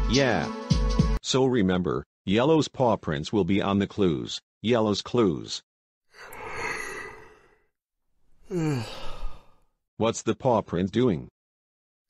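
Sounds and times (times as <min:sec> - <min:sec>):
person yawning: 0:06.2 - 0:07.6, 0:08.4 - 0:09.6.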